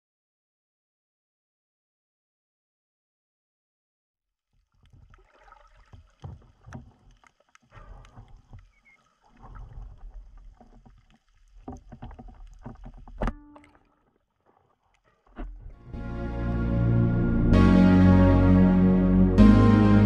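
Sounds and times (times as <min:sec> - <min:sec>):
water washing over camera: 0:04.7 - 0:15.8
underwater clicks: 0:04.8 - 0:15.8
low underwater rumbles: 0:04.8 - 0:20.0.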